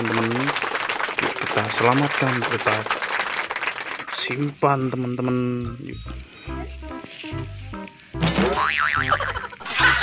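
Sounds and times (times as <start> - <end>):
background music with bass notes: 5.3 - 10.0
cartoon boing sound effect: 8.2 - 9.6.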